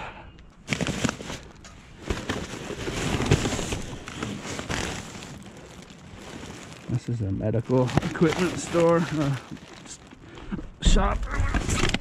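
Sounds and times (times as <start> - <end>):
plastic garbage bags rustling: 0.6 - 12.0.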